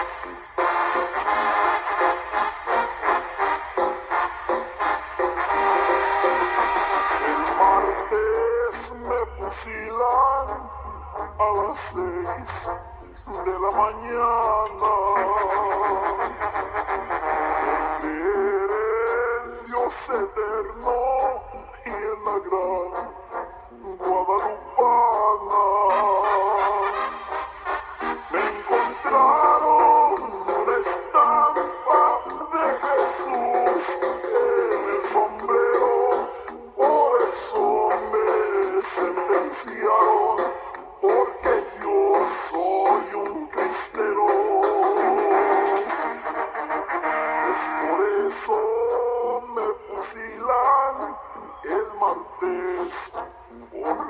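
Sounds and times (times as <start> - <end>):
song playing from cassette: 0.0 - 54.0.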